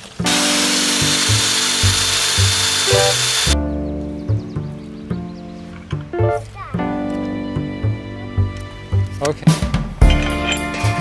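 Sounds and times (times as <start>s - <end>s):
power drill boring into wood: 0.0s - 3.6s
background music with plucked bass: 2.4s - 11.0s.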